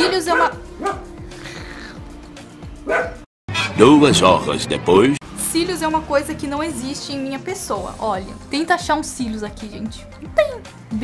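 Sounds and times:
dog barking: 0.0s - 1.2s, 2.8s - 3.3s
music: 0.0s - 11.0s
narrator speaking: 3.7s - 8.3s.

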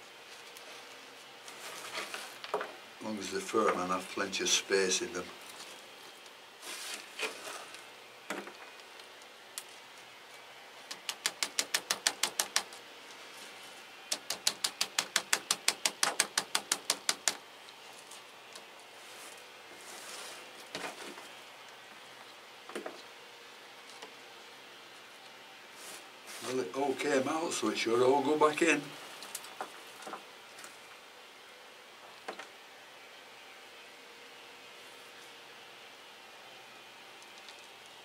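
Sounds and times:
quick even clicking of chips: 10.9s - 12.7s.

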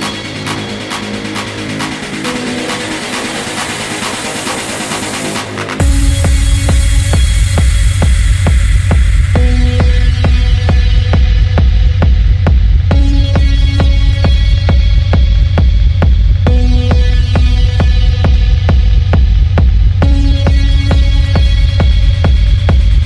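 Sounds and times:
techno music with heavy bass: 0.0s - 23.0s.

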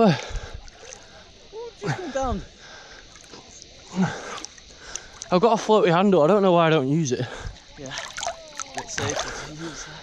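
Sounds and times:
water lapping: 0.0s - 10.0s
swimmer grunting breath: 2.6s - 5.3s.

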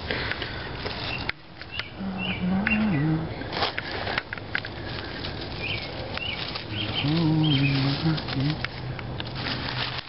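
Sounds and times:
leaves rustling by hand: 0.0s - 10.0s.

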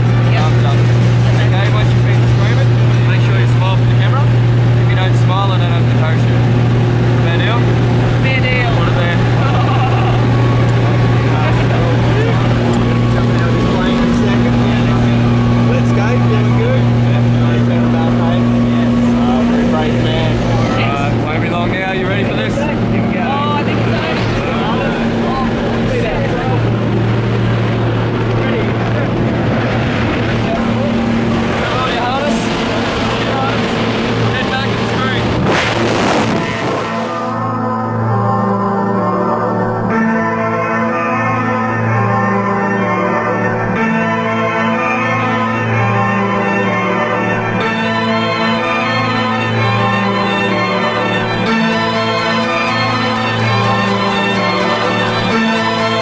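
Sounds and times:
aircraft engine droning: 0.0s - 56.0s.

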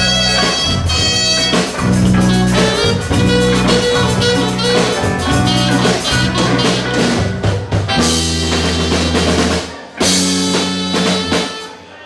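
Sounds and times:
bass guitar: 0.0s - 11.8s
electric guitars: 0.0s - 11.9s
drum kit: 0.0s - 12.0s.

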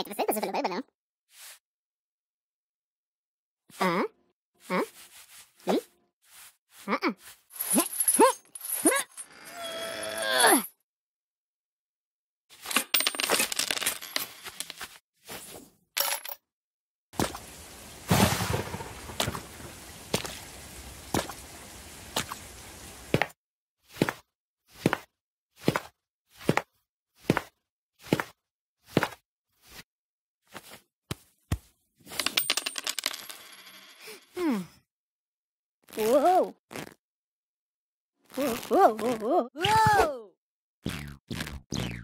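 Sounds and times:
coin clinking in piggy bank: 7.6s - 10.6s, 12.6s - 14.8s, 16.0s - 16.4s, 32.1s - 34.3s.

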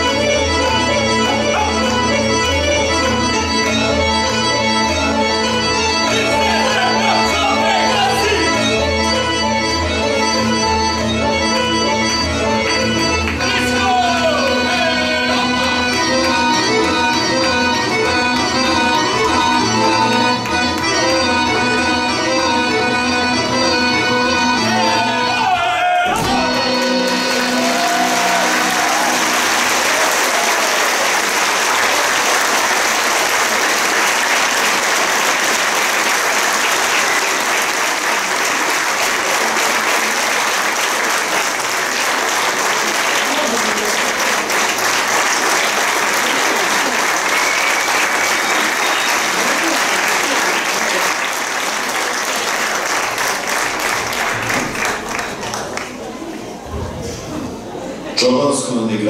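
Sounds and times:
audience applauding: 0.0s - 8.8s, 26.1s - 56.3s.

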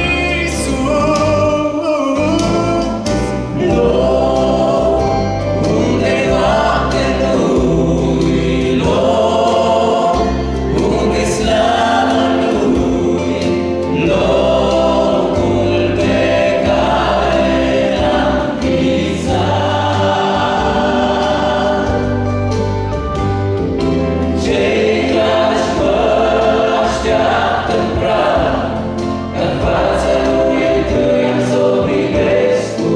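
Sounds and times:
men singing into microphones: 0.0s - 22.5s, 24.2s - 32.9s
amplified accompaniment with bass: 0.0s - 32.9s
congregation singing a hymn: 0.0s - 32.9s.

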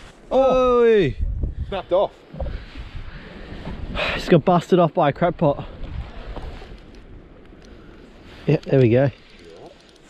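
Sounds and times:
wind buffeting microphone: 0.0s - 4.3s, 5.6s - 9.2s.

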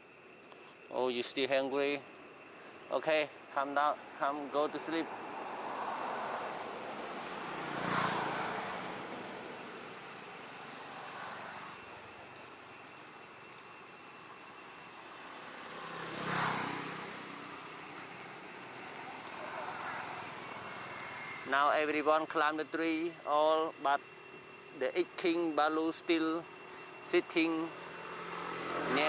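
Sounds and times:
vehicles passing: 1.3s - 25.3s, 26.0s - 29.0s.

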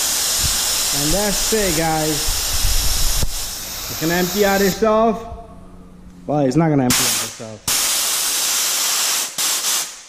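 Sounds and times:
compressed air hissing: 0.0s - 5.0s, 6.9s - 10.0s.

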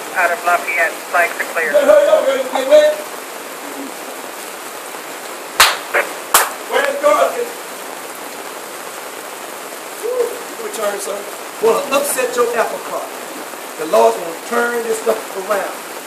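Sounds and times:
rain on tent canopy: 0.0s - 16.0s.

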